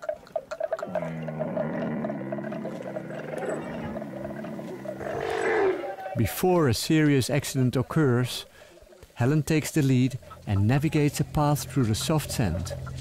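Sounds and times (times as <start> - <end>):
camel bellowing: 0.0 - 6.2.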